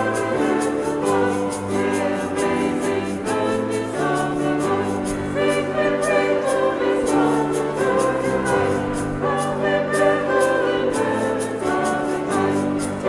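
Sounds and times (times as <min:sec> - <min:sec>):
group singing a hymn: 0:00.0 - 0:13.0
instrumental accompaniment: 0:00.0 - 0:13.0.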